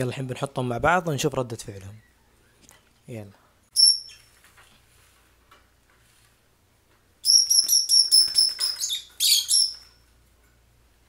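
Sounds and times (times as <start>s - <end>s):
lovebirds chirping: 3.7s - 4.3s, 7.2s - 10.0s.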